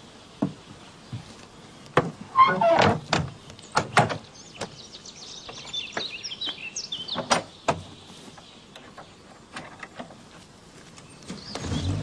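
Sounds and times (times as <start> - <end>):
box scraping slide with squeak: 2.3 - 3.0.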